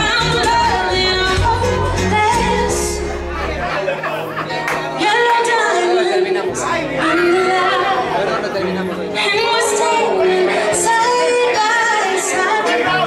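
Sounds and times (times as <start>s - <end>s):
crowd chatter: 0.0s - 13.0s
song with vocals: 0.0s - 13.0s.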